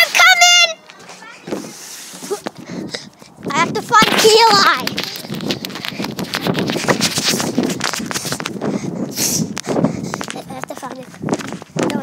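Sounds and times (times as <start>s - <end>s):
hurried footsteps: 0.0s - 12.0s
microphone rubbing on clothing: 1.4s - 12.0s.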